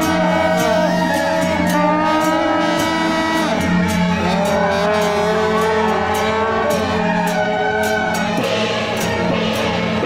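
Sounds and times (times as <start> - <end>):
reed horns playing a melody: 0.0 - 10.0.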